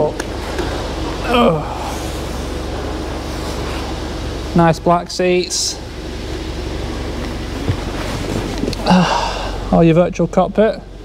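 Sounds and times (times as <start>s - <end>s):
machinery hum and hiss: 0.0s - 11.0s.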